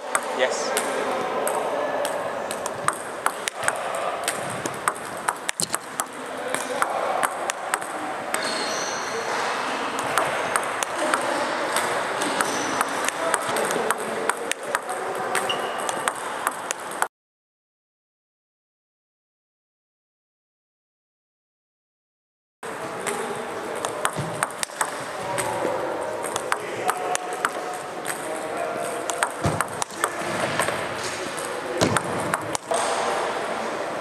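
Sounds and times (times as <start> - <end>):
table tennis balls clicking: 0.0 - 8.5, 9.9 - 17.1, 23.0 - 32.9.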